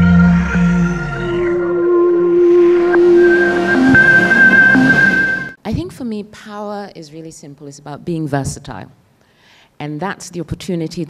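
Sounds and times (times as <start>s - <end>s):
sustained synthesized tones: 0.0s - 5.6s
whooshing sweep: 1.2s - 5.6s.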